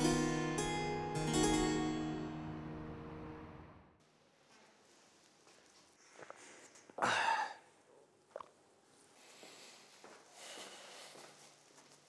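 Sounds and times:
man sighing heavily: 7.0s - 7.7s.

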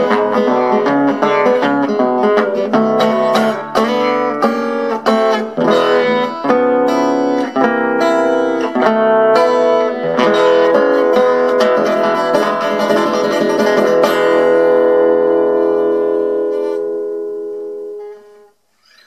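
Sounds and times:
acoustic guitar blues: 0.0s - 19.0s.

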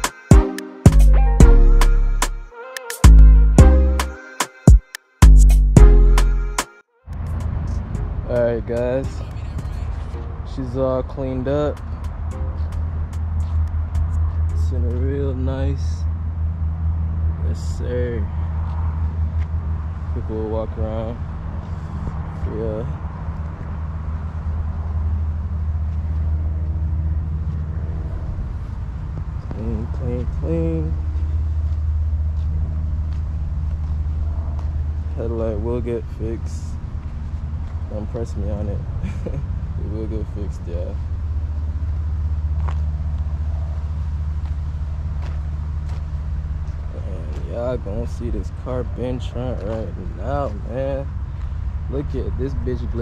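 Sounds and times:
man speaking: 8.3s - 11.8s, 14.6s - 16.0s, 37.9s - 38.8s, 47.0s - 51.1s, 51.9s - 53.0s.

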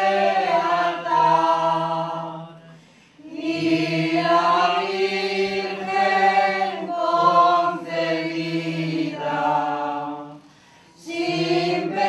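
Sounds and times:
group singing a slow hymn: 0.0s - 12.0s.

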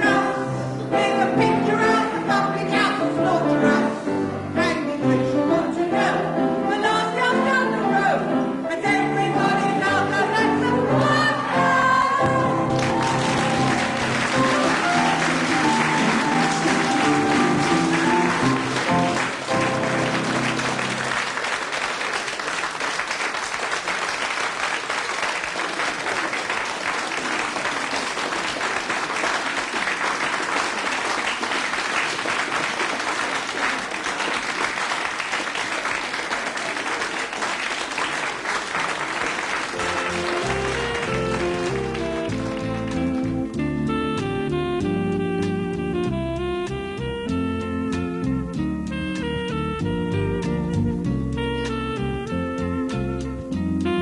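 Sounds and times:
band playing: 9.0s - 22.2s, 39.0s - 54.0s
audience applauding: 11.0s - 43.6s.

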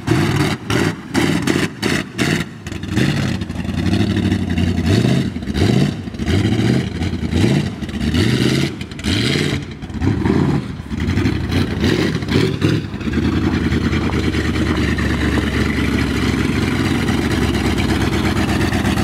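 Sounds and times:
truck engine revving: 0.0s - 19.0s.

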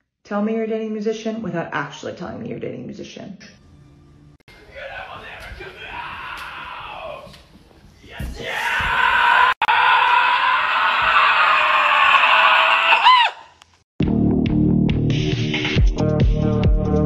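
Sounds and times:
person screaming: 4.6s - 7.4s, 8.1s - 13.5s.

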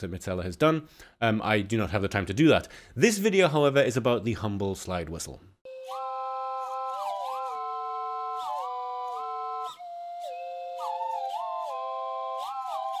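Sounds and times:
slide whistles playing a tune: 5.7s - 13.0s.

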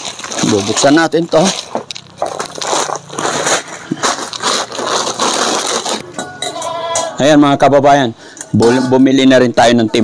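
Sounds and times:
plastic packaging crinkling: 0.0s - 6.0s.

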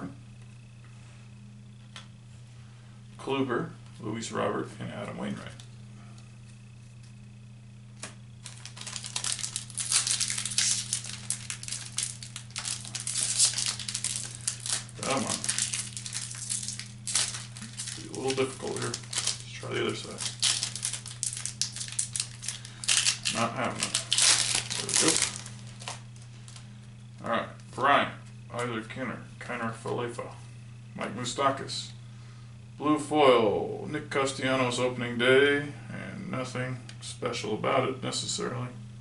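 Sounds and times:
steady low hum: 0.0s - 39.0s
wrapper tearing and crinkling: 8.4s - 26.6s.

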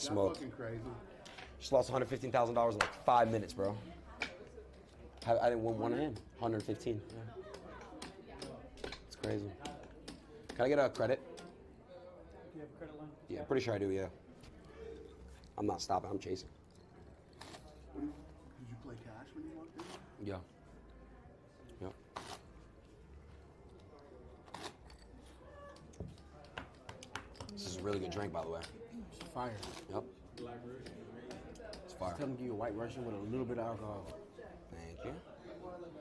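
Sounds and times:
murmur of voices: 0.0s - 36.0s.

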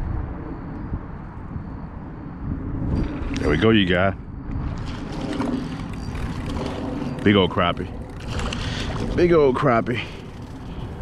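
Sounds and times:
wind rumbling on microphone: 0.0s - 11.0s
fishing reel: 4.8s - 11.0s.

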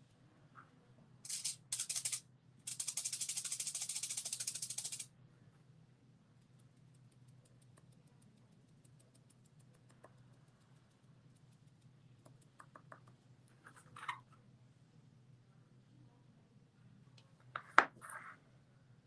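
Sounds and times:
fast even rattling: 1.3s - 5.1s.

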